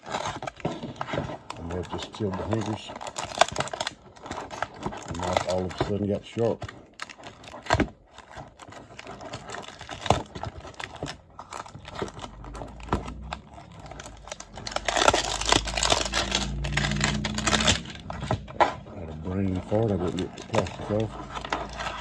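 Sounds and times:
plastic wrapping crinkling and tearing: 0.0 - 22.0.

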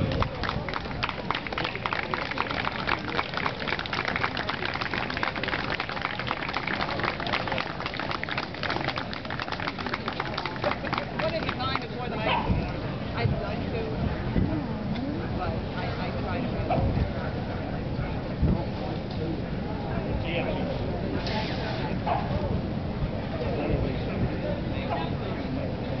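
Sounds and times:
faint outdoor voices: 0.0 - 26.0.

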